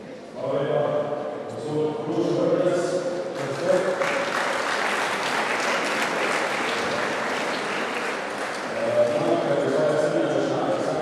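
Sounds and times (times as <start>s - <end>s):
audience applauding in a hall: 3.4s - 10.0s.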